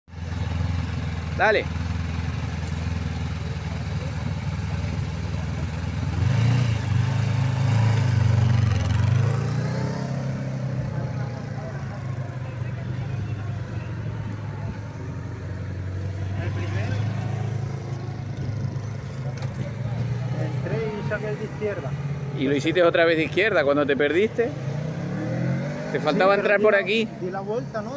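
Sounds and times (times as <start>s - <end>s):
motorcycle engine: 0.1s - 27.9s.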